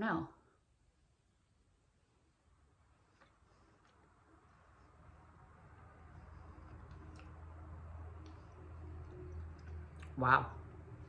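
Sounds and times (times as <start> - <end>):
low noise: 0.0 - 11.0
chewing mouth clicks: 6.1 - 10.2.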